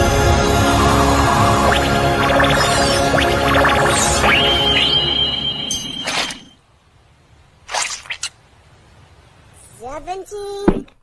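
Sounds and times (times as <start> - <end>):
cartoon swish: 0.6 - 6.6.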